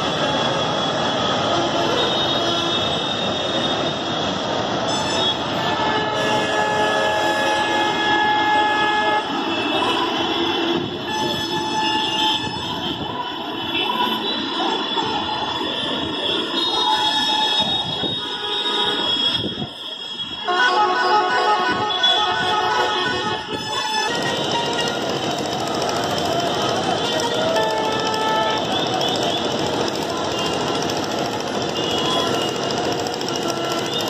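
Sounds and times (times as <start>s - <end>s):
vehicle horns: 0.0s - 4.1s, 4.8s - 34.0s
engine and road noise: 0.0s - 34.0s.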